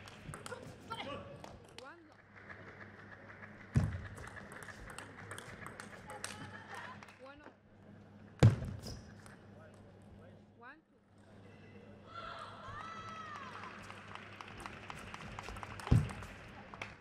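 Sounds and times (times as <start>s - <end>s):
table tennis ball clicking: 0.0s - 0.7s, 3.8s - 6.8s
sneakers squeaking on floor: 8.4s - 9.2s.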